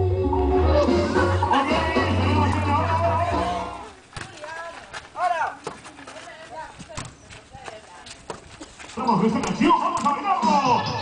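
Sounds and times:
volleyball hit by hand: 4.1s - 4.5s.

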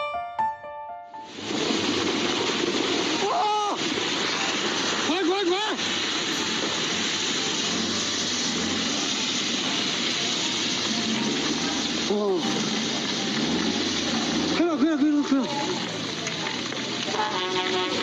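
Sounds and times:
rock and debris rushing downhill: 1.3s - 18.0s
person exclaiming: 3.2s - 3.8s.

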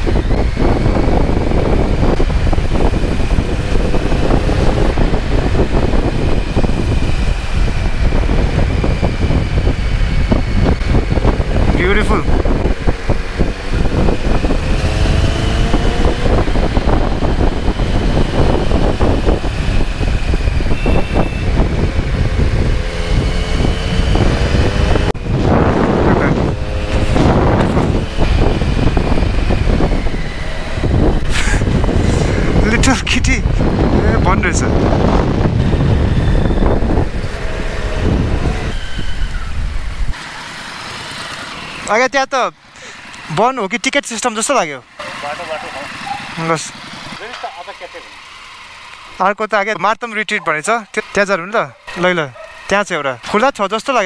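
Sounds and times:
wind noise on microphone: 0.0s - 40.2s
motorcycle engine revving: 0.0s - 49.8s, 50.5s - 54.0s.

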